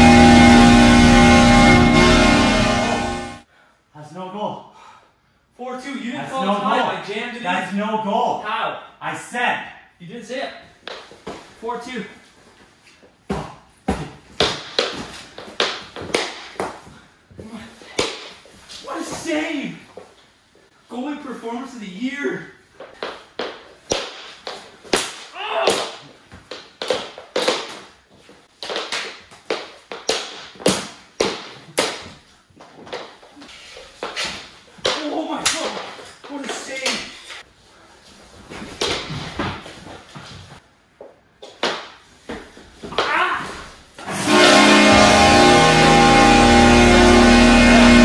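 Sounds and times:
music: 0.0 - 3.4, 44.1 - 48.0.

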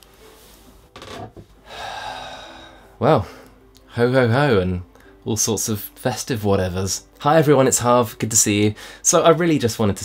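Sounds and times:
man breathing in: 1.6 - 3.6.

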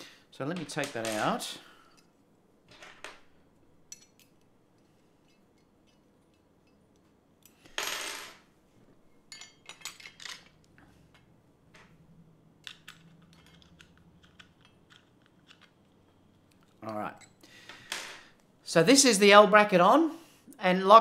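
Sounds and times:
small metal clicks and clinks: 12.6 - 17.4.

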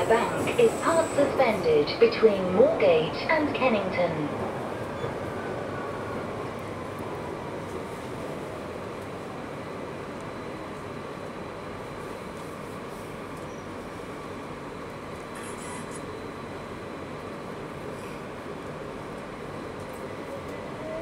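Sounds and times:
underground train rumbling in tunnel: 0.0 - 21.0.

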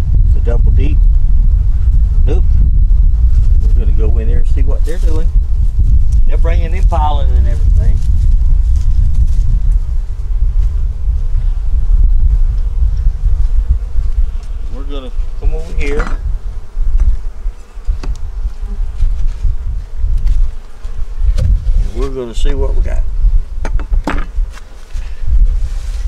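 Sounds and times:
wind on microphone: 0.0 - 26.0
bees buzzing: 8.3 - 22.4.

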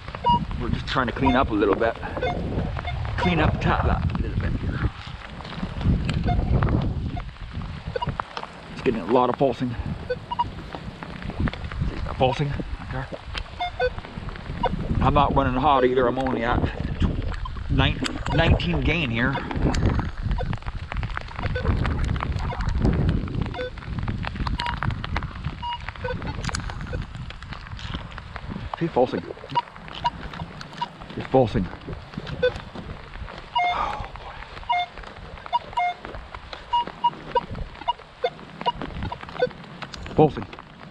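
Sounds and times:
footsteps on mulch: 0.0 - 40.9
low wind rumble: 0.0 - 40.9
rustling: 0.0 - 40.9
metal detector beeps: 0.2 - 0.4, 1.2 - 1.5, 2.2 - 3.4, 10.1 - 10.5, 13.6 - 14.0, 18.2 - 18.6, 23.5 - 23.7, 25.6 - 26.2, 32.3 - 32.6, 33.6 - 33.8, 34.7 - 36.0, 36.7 - 39.6
metal detector short beeps: 2.2 - 3.3, 33.6 - 33.8, 35.5 - 36.0.

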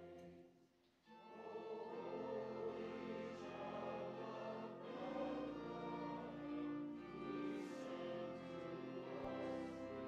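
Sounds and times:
choir singing sustained notes: 1.1 - 10.0.

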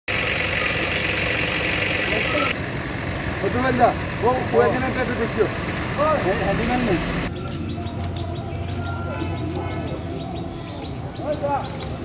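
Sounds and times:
vehicle engine idling: 0.1 - 12.0.

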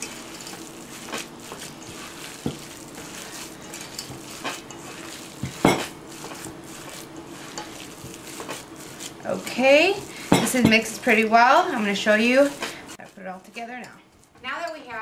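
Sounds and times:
hands kneading wet meat mixture: 0.0 - 15.0.

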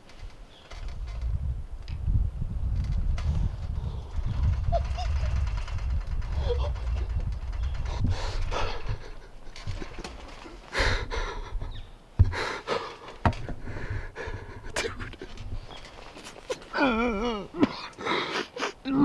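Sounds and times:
low microphone rumble: 0.8 - 10.0
man panting heavily: 7.9 - 9.4, 10.6 - 15.4, 17.5 - 18.8.

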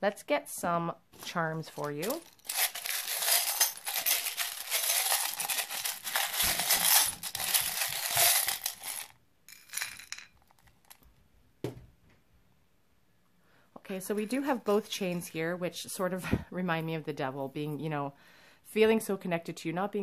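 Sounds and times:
metal charms jingling: 1.6 - 10.2
charms clinking into wooden bowl: 1.6 - 11.0.

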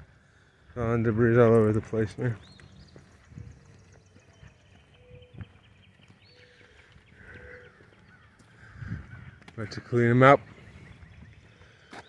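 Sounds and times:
footsteps on concrete: 1.2 - 12.0.

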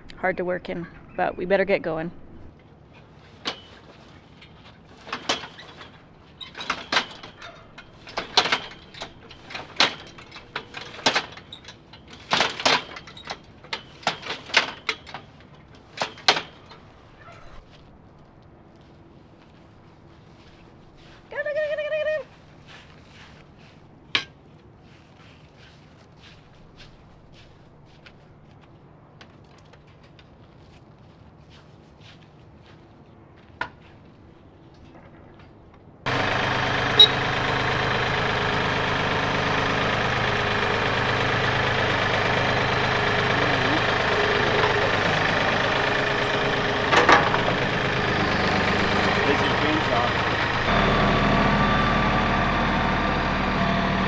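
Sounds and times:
tractor engine running: 3.4 - 17.1, 36.0 - 54.0.

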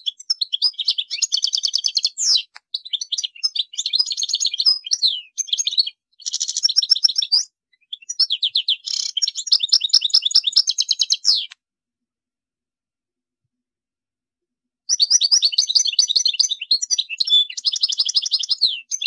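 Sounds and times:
goldfinch singing: 0.0 - 11.6, 14.9 - 19.0.

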